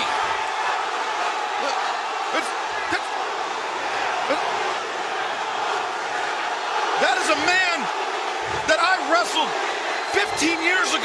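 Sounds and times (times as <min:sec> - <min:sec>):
crowd cheering: 0:00.0 - 0:11.0
commentator speaking: 0:07.0 - 0:07.9, 0:08.5 - 0:11.0.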